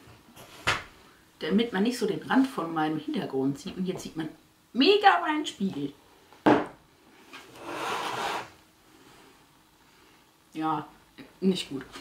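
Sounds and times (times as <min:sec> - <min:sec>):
mirror scraping on desk: 0:07.3 - 0:08.6.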